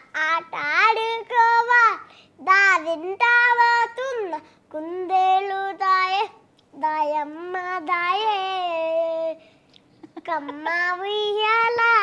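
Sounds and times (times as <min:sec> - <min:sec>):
young girl singing: 0:00.0 - 0:12.0.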